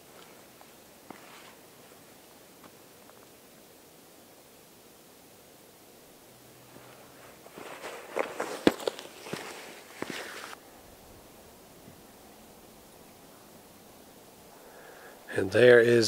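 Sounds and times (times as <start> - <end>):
boots stepping on rock: 6.8 - 10.6
sharp scuffs and clicks: 6.8 - 10.6.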